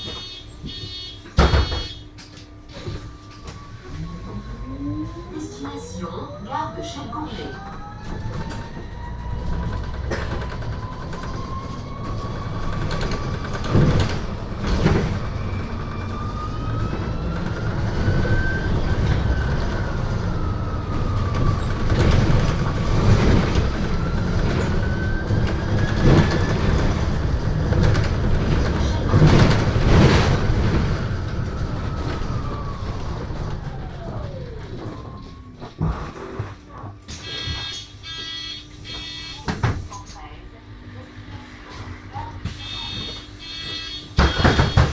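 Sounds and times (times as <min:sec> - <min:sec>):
electric bus motor whine: 0:00.0 - 0:39.5, 0:40.2 - 0:44.9
low road rumble: 0:03.1 - 0:36.8.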